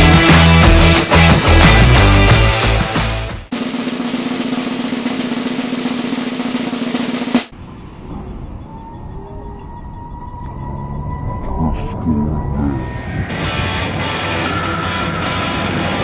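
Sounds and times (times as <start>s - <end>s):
music: 0.0s - 7.5s, 12.4s - 16.0s
snare drum roll: 3.5s - 7.5s.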